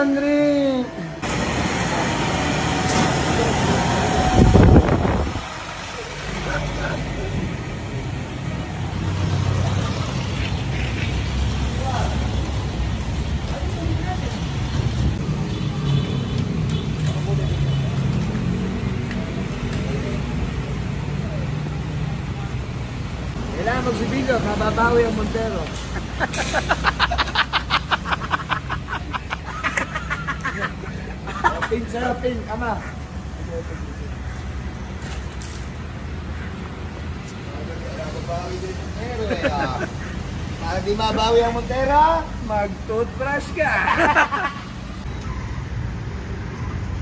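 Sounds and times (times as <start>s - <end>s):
street noise: 0.0s - 47.0s.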